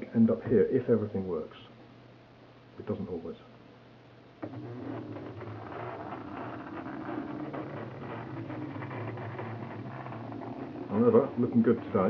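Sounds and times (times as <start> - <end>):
small vibrating motor buzzing: 4.4 - 12.0.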